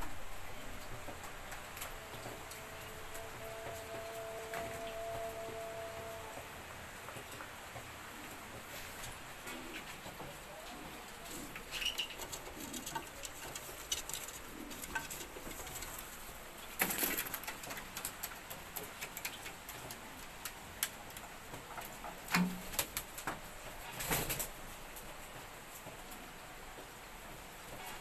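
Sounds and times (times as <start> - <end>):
pigeon cooing: 8.1 - 17.5
small clicks and scrapes: 11.2 - 16.2.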